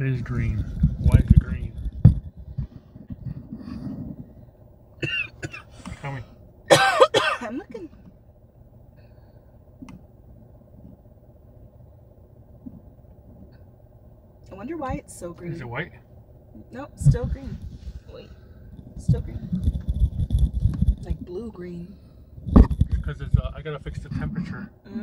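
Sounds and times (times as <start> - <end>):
faint steady car hum: 0.0 - 25.0
man coughing: 5.0 - 7.5.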